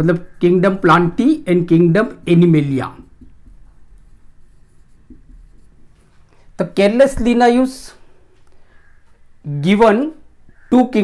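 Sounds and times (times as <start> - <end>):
marker writing on whiteboard: 0.2 - 7.4.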